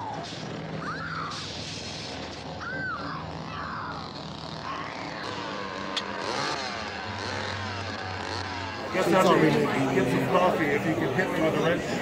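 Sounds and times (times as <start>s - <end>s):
engine running and revving: 1.4s - 12.0s.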